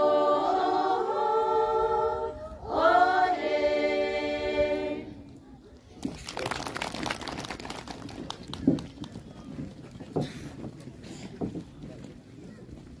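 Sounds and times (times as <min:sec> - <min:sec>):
footsteps on tiled stage: 0:08.0 - 0:13.0.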